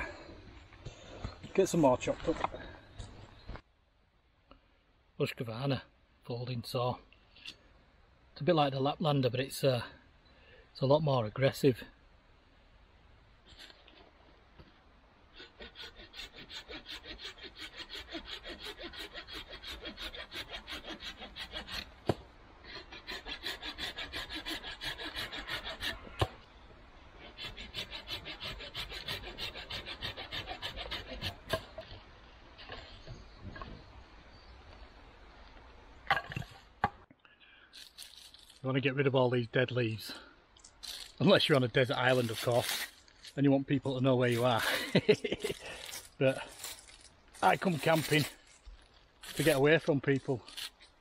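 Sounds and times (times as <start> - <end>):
hand saw cutting wood: 15.3 - 22.0, 22.6 - 26.3, 27.2 - 31.8, 42.0 - 42.9, 47.5 - 48.4, 49.2 - 49.6.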